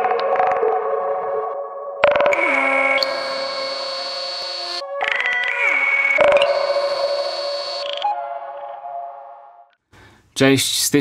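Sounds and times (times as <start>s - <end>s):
clicking pulses: 2.0s - 8.1s.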